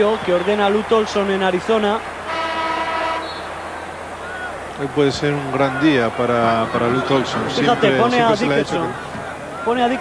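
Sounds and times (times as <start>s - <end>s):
arena horn buzzing: 2.2s - 3.5s.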